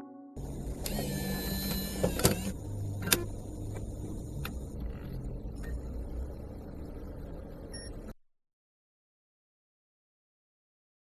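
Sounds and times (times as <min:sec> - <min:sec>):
low steady rumbling: 0:00.4 - 0:08.2
thin whine: 0:00.4 - 0:08.2.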